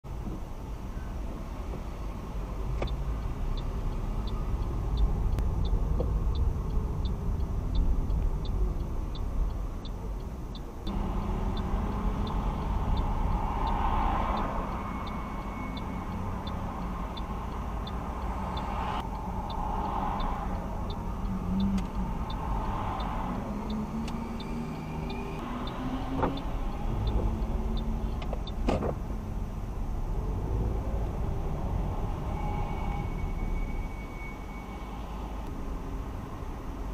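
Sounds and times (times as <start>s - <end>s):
engine and road rumble: 0.0s - 36.9s
passing traffic: 0.0s - 36.9s
turn signal ticking: 0.1s - 36.9s.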